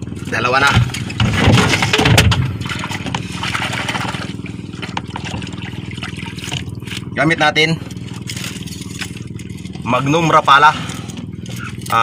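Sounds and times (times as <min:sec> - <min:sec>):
boat engine running: 0:00.0 - 0:12.0
water splashing along hull: 0:00.0 - 0:12.0.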